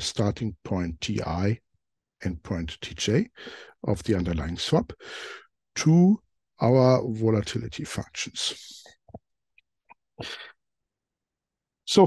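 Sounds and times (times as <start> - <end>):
man's sharp breath: 3.4 - 3.8, 5.0 - 5.5, 10.2 - 10.5.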